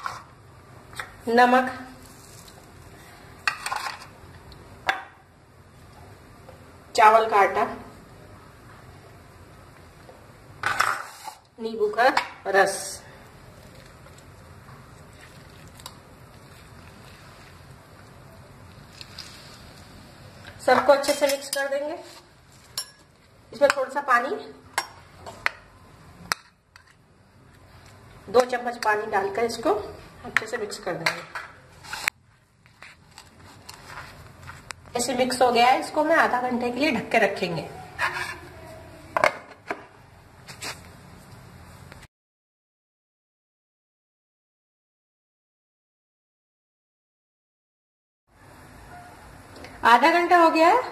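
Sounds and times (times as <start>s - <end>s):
low background noise: 0.0s - 42.1s
lid scraping on bowl: 38.0s - 38.5s.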